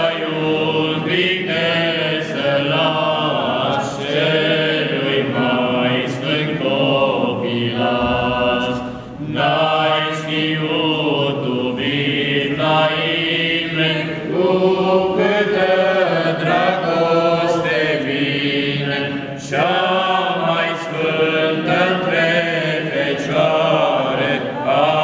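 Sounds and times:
men singing a cappella: 0.0s - 25.0s.

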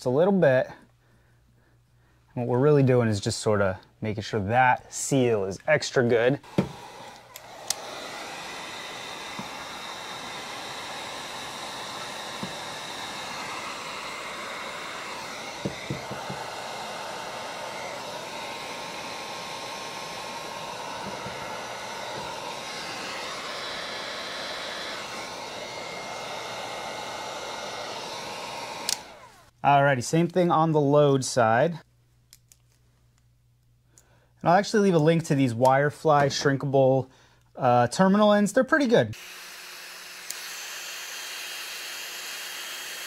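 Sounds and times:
heat gun blowing: 6.4s - 29.6s, 39.1s - 43.0s.

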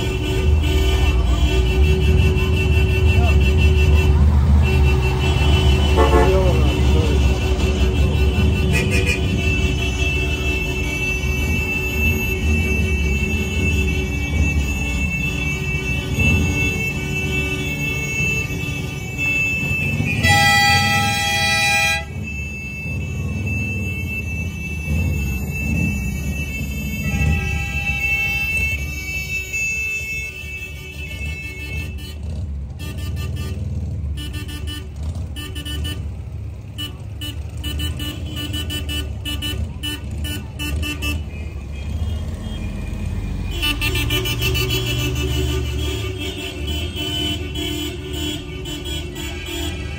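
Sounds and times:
cars driving slowly past: 0.0s - 29.8s, 31.0s - 49.9s
car horn honking: 0.0s - 49.9s.

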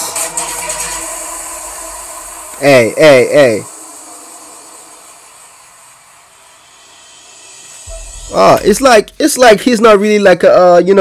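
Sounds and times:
faint steady hiss: 1.7s - 11.0s.

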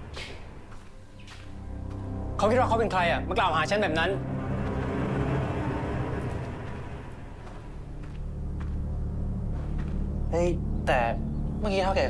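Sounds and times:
soft wash of sound: 1.6s - 8.4s.

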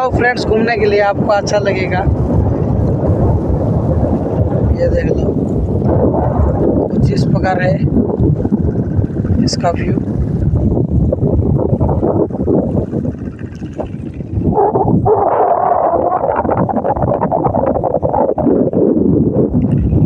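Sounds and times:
wind buffeting microphone: 0.0s - 20.0s.

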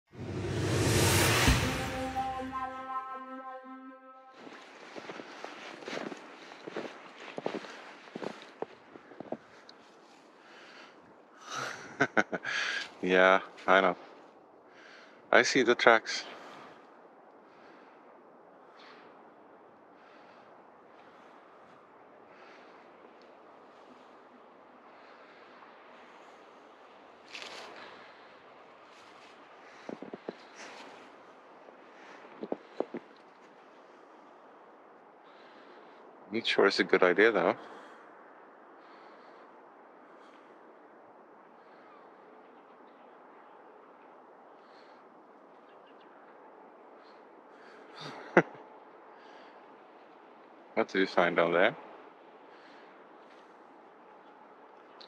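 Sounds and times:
footsteps crunching in snow: 4.4s - 10.3s.

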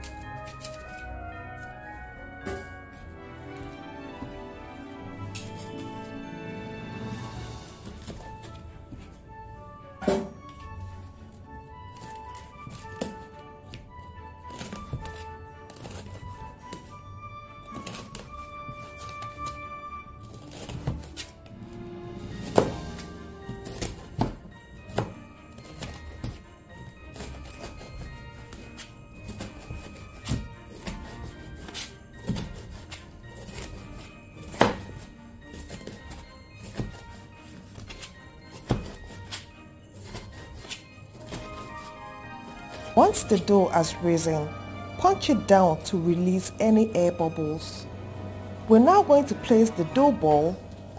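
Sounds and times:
knife cutting peppers on board: 22.4s - 43.4s.

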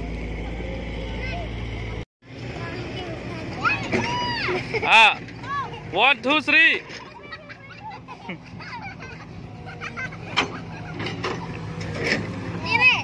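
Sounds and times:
children's voices and calls: 0.8s - 13.0s.

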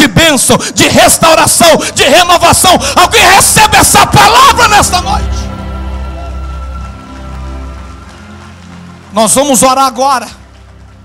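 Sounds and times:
keyboard playing sustained chords: 1.4s - 11.0s
congregation clapping: 3.2s - 11.0s.

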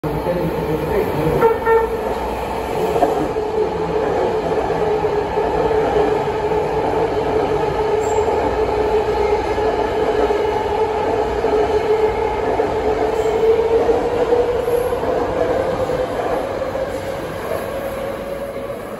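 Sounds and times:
train passing at speed: 0.0s - 18.9s
train whine: 0.0s - 18.9s.

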